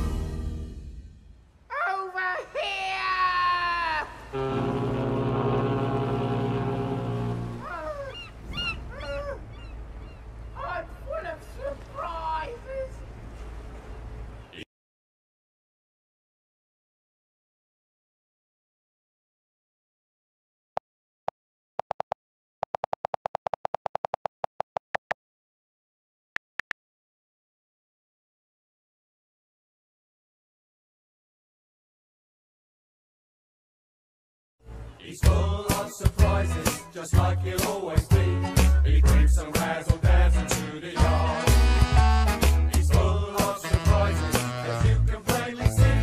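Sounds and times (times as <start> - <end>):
ship's horn blast: 4.2 - 8.0, 41.0 - 42.7, 43.6 - 45.0
short high cries: 7.6 - 10.2.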